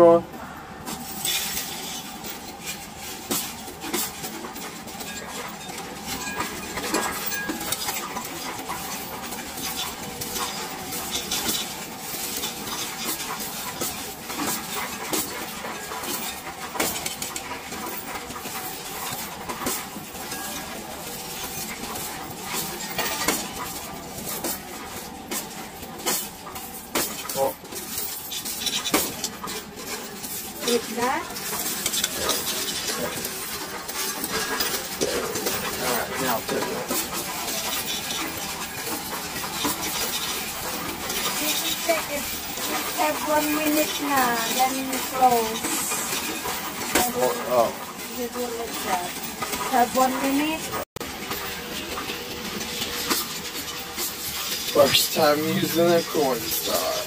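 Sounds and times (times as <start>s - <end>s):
coins clattering in metal tray: 0.9s - 57.0s.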